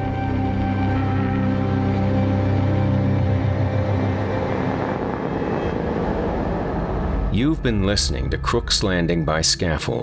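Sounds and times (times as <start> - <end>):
dark ambient drone: 0.0 - 10.0.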